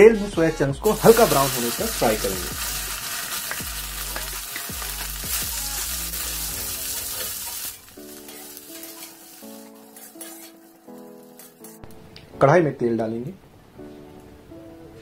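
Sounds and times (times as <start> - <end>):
soft background music: 0.0 - 15.0
food sizzling in hot oil: 0.8 - 11.8
metal spatula scraping pan: 6.1 - 11.8.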